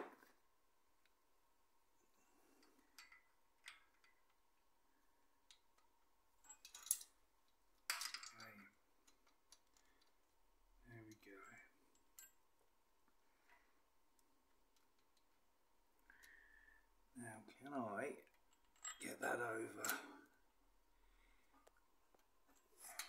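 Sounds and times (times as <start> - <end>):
metal chain clinking and rattling: 2.6 - 4.4, 6.4 - 10.1, 18.3 - 20.4, 22.4 - 23.0.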